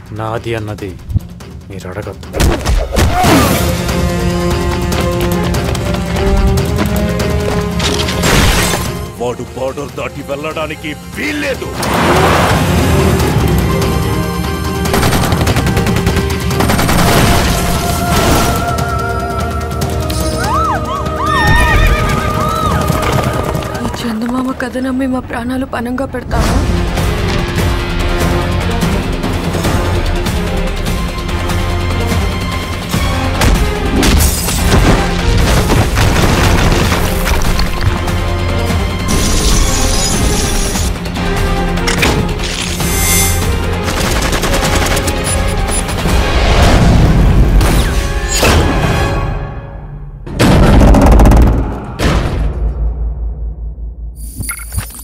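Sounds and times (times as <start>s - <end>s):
film score music: 0.0s - 55.0s
galloping hooves: 4.2s - 7.7s, 21.8s - 24.9s
horses whinnying: 21.3s - 23.8s.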